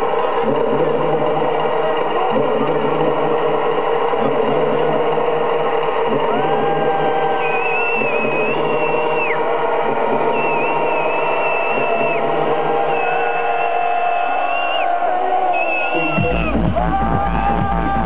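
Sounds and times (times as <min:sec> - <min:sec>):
electronic dance music: 0:00.0 - 0:18.0.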